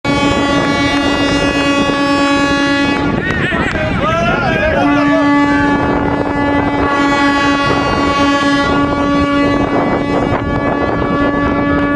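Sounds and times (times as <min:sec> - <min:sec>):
horn low steady note: 0:00.1 - 0:11.9.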